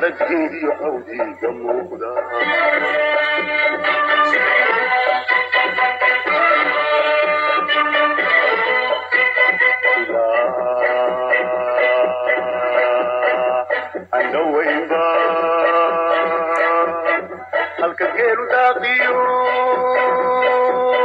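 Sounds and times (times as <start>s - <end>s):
song with held sung notes: 0.0s - 21.0s.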